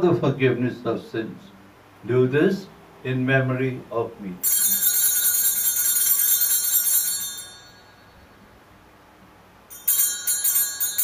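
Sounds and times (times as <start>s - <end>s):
altar bells jingling: 4.4s - 8.4s, 9.7s - 11.0s.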